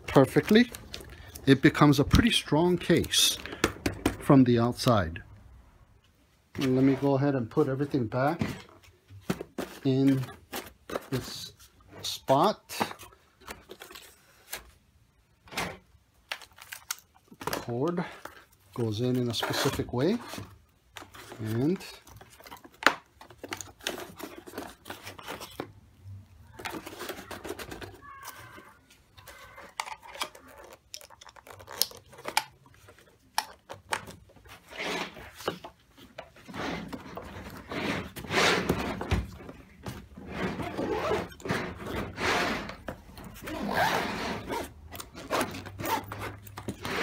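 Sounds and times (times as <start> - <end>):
handling rustles and scrapes: 6.0 - 47.0
zipper being pulled: 40.3 - 47.0.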